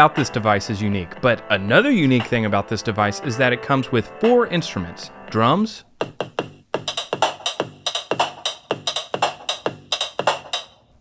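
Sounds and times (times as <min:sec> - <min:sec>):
electronic drum hits: 0:06.0 - 0:10.7.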